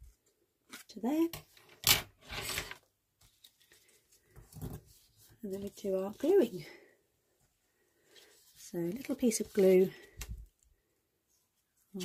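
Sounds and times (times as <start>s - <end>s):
paper rustling: 2.4s - 6.5s, 8.0s - 10.5s.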